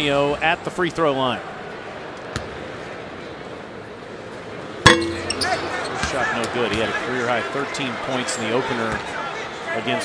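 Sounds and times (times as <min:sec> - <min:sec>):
arena crowd noise: 0:00.0 - 0:10.0
basketball clanging off metal rim: 0:04.9 - 0:06.1.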